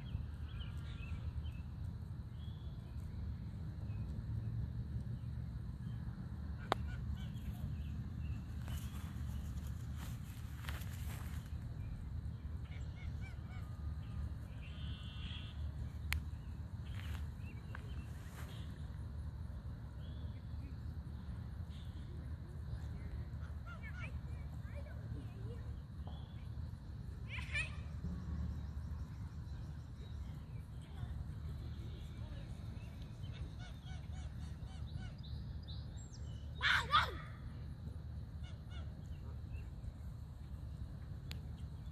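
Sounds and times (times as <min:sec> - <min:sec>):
low rumble: 0:25.2 - 0:33.5.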